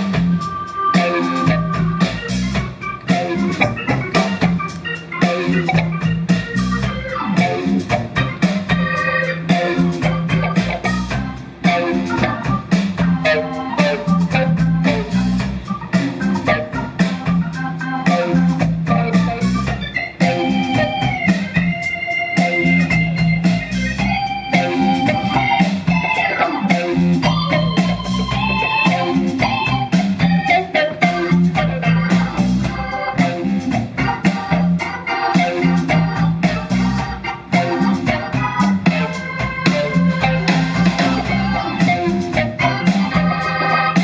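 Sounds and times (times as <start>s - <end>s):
drums: 0.0s - 44.0s
electric guitar: 0.0s - 44.0s
keyboard: 0.0s - 44.0s.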